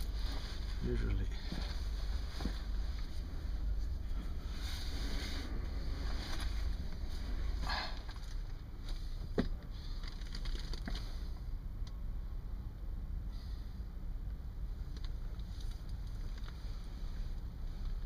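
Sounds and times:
sleeping bag rustling: 0:00.0 - 0:09.0
low rumble: 0:00.0 - 0:18.0.

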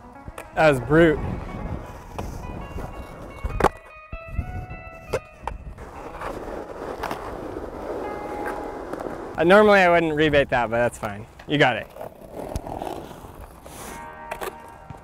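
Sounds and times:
skateboard wheels rolling: 0:00.0 - 0:15.0
skateboard clacking on ground: 0:01.9 - 0:03.9, 0:05.0 - 0:09.9, 0:10.6 - 0:15.0.

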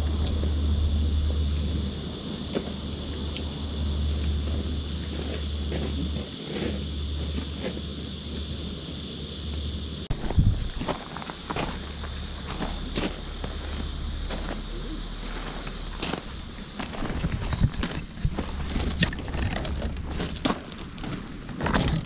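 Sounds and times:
wind rumble on microphone: 0:00.0 - 0:22.0.

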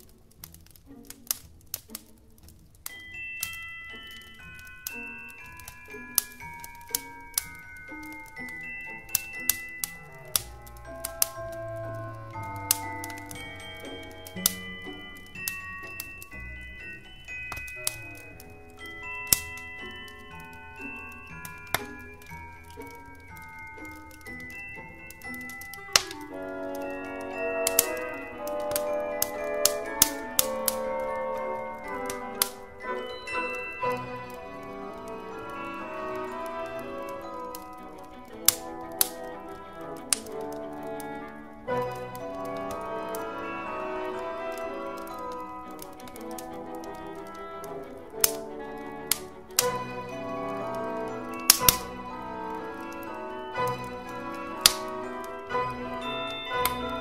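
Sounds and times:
burning logs popping: 0:00.0 - 0:57.0
instrumental christmas music: 0:00.0 - 0:57.0
wood fire crackling: 0:00.0 - 0:57.0.

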